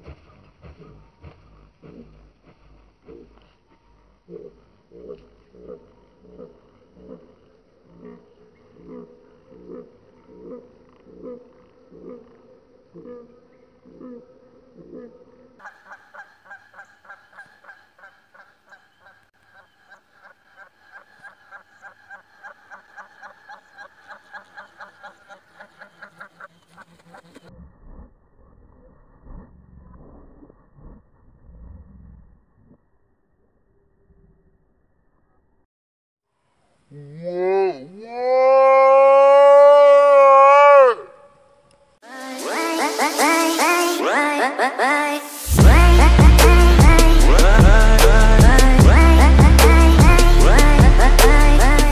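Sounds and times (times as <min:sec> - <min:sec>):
electronic music with rising zips: 0:45.2 - 0:51.9.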